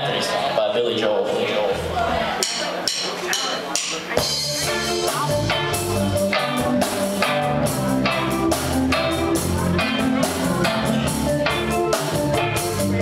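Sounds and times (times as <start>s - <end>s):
drum kit and cymbal strokes: 2.4s - 13.0s
bass guitar: 4.1s - 13.0s
electric guitar: 4.2s - 13.0s.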